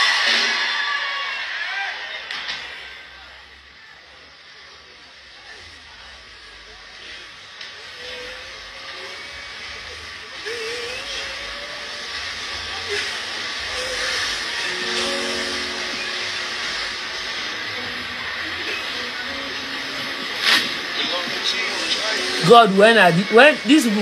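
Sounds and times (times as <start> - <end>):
hiss-like crowd noise: 0.0 - 24.0
faint voices: 1.7 - 24.0.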